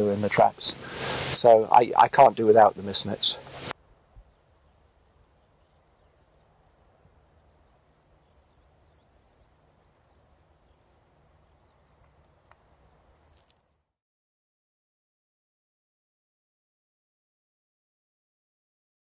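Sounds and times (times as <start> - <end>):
faint background hiss: 0.0 - 13.6.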